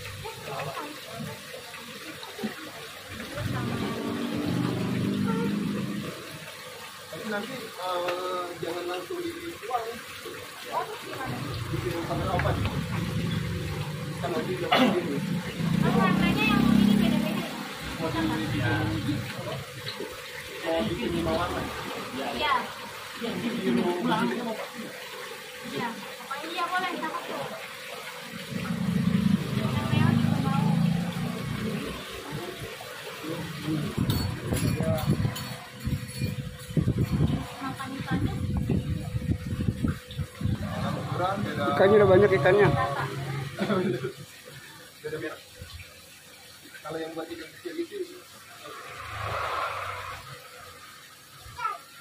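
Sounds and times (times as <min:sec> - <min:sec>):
trickle of running water: 0:00.0 - 0:52.0
indistinct conversation: 0:00.2 - 0:51.9.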